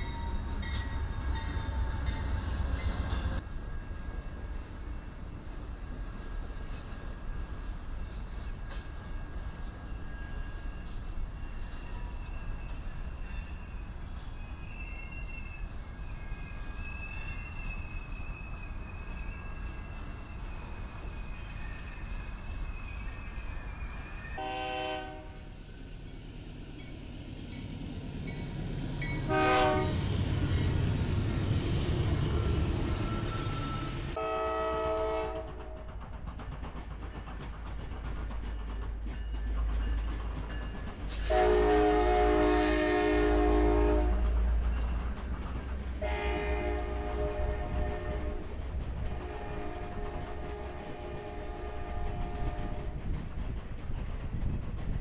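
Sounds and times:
rumble of passing train: 0.0s - 55.0s
locomotive horn blasts: 24.4s - 25.4s, 29.2s - 30.0s, 34.2s - 35.6s, 41.2s - 44.3s, 46.0s - 48.5s, 49.1s - 52.9s.

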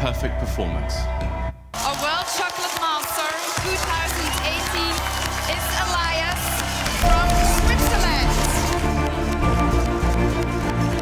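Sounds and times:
loud celebratory music: 1.1s - 11.0s
audience cheering and clapping: 1.8s - 11.0s.

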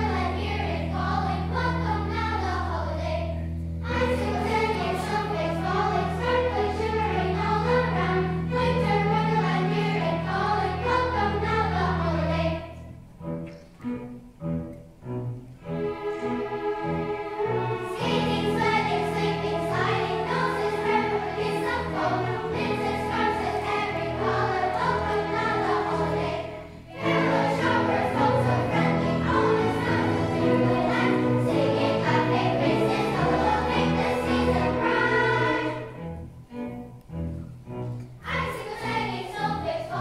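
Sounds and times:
children's choir singing: 0.0s - 13.3s, 15.6s - 36.6s, 37.8s - 40.0s
string orchestra: 0.0s - 40.0s.

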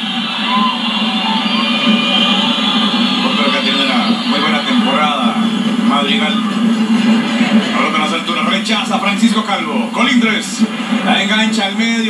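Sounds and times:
indistinct voices: 0.0s - 12.0s
stadium crowd noise: 0.0s - 12.0s.

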